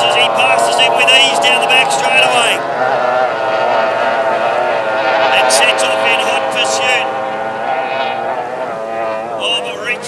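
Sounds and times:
racing outboard engines whining: 0.0 - 10.0.

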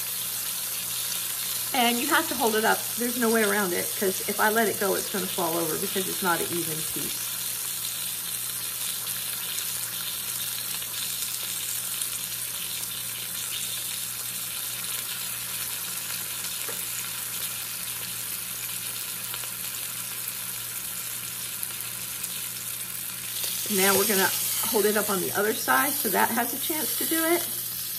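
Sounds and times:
meat sizzling in hot oil: 0.0 - 27.9.

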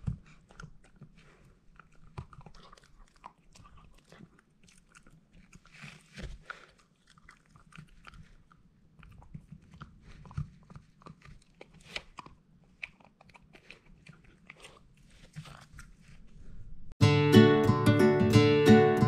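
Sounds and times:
small dog chewing: 0.0 - 16.2.

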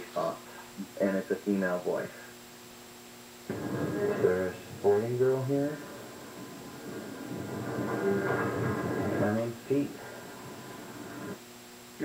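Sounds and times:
recorder playback hiss and hum: 0.0 - 12.0.

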